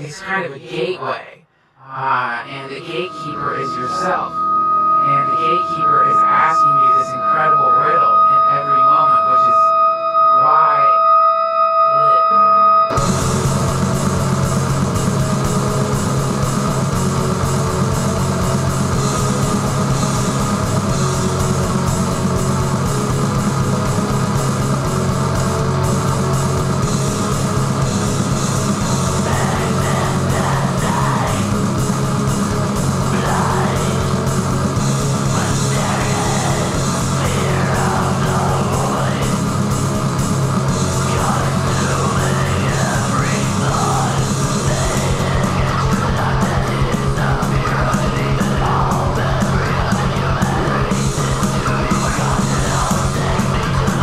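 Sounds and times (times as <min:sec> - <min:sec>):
spoken-word voice: 0:00.0 - 0:04.4, 0:05.0 - 0:09.7, 0:10.4 - 0:11.0, 0:11.9 - 0:12.5, 0:29.2 - 0:31.5, 0:33.1 - 0:34.1, 0:35.3 - 0:39.4, 0:41.0 - 0:54.0
held synth tones: 0:00.0 - 0:14.3, 0:33.0 - 0:46.0
black metal band playing: 0:01.9 - 0:54.0.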